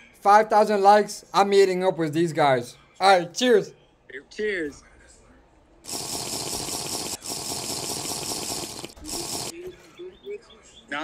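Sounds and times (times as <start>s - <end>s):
liquid gurgling from glass bottle: 5.9s - 9.5s.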